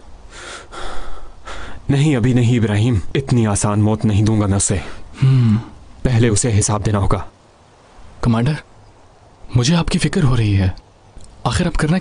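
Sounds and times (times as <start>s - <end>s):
man breathing out in puffs: 0.3s - 1.8s.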